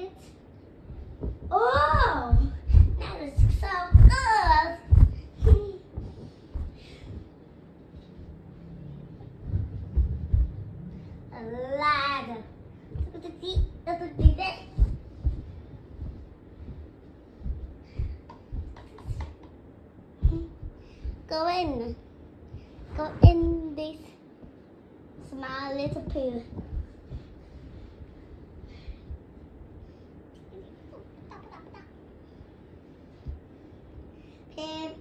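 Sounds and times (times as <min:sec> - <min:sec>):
low knocks and thumps: 0:00.8 - 0:07.3, 0:08.2 - 0:11.3, 0:12.2 - 0:19.6, 0:20.2 - 0:23.8, 0:25.8 - 0:27.7.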